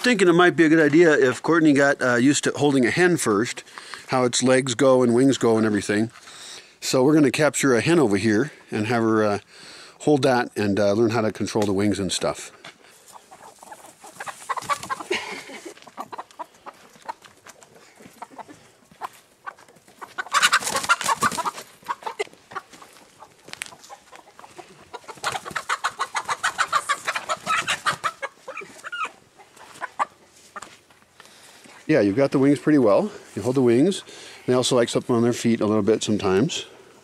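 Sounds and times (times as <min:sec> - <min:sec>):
scuffling: 0:12.6 - 0:34.0.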